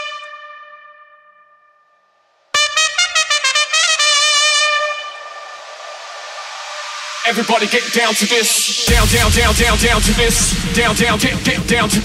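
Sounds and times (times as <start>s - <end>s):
held brass note: 2.6s - 5.6s
wash of noise: 5.0s - 12.0s.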